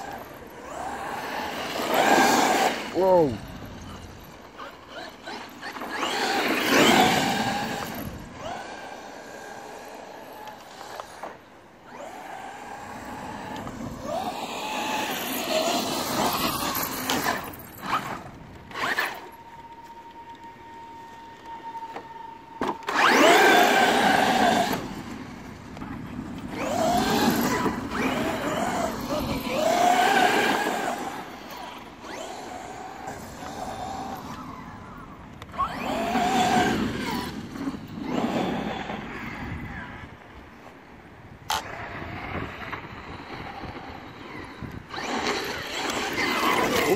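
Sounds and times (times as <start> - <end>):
electric motor whine: 0.0 - 40.0, 41.5 - 46.9.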